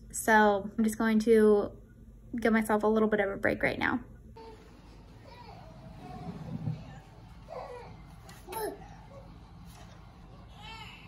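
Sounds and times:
toddler babbling: 0:04.4 - 0:09.2
handling noise rumble: 0:04.7 - 0:08.4.

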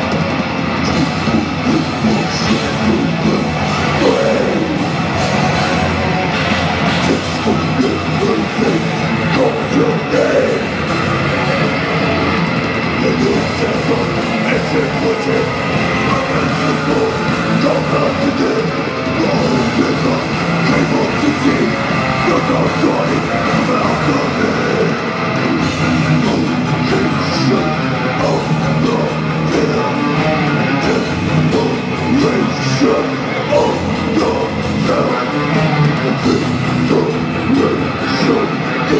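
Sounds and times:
bass guitar: 0:00.0 - 0:38.9
distorted electric guitars: 0:00.0 - 0:38.9
drums: 0:00.0 - 0:38.9.

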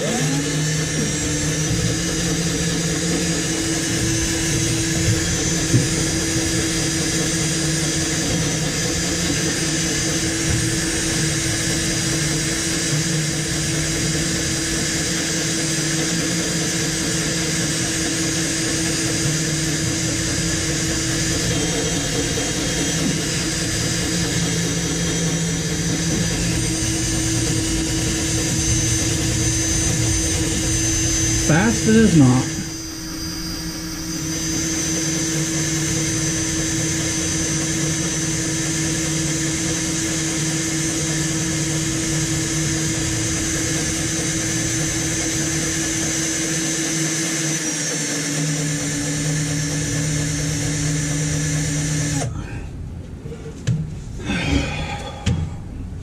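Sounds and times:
power drill cutting into steel: 0:00.0 - 0:52.3.

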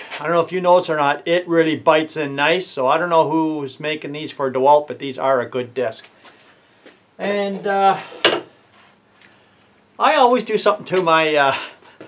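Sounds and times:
faint handling noise: 0:08.2 - 0:09.9.

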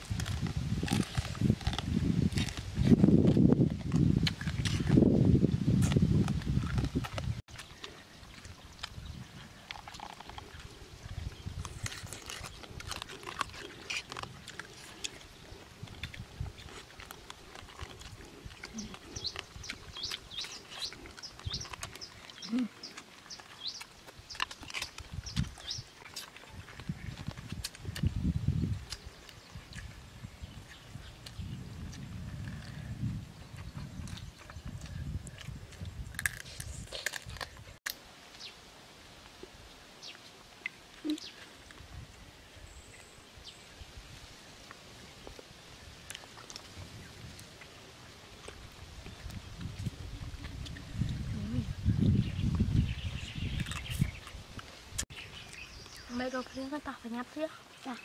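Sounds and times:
wet chewing and lip-smacking: 0:00.0 - 0:05.1, 0:05.7 - 0:38.0, 0:45.2 - 0:56.1.

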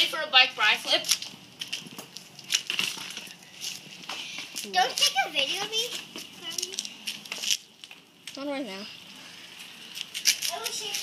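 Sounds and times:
bicycle knocking and rattling: 0:01.1 - 0:08.4.

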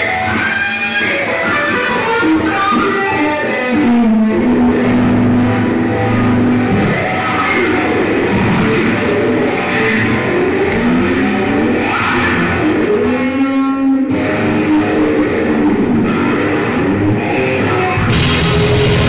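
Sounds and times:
electric guitar solo: 0:00.0 - 0:19.0.

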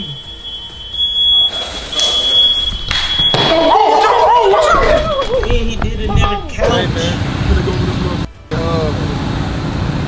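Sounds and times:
smoke alarm high-pitched tone: 0:00.0 - 0:03.9.

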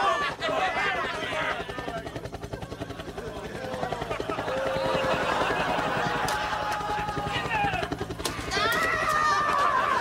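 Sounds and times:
helicopter rotor chopping: 0:00.0 - 0:10.0.

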